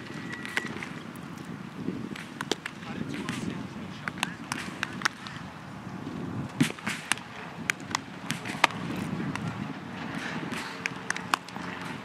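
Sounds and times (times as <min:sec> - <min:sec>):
baseballs popping into gloves: 0:00.4 - 0:05.4, 0:06.5 - 0:09.5, 0:10.1 - 0:12.0.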